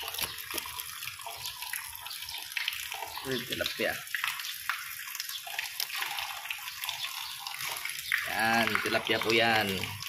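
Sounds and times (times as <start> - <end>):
water splashing in pond: 0.0 - 10.0.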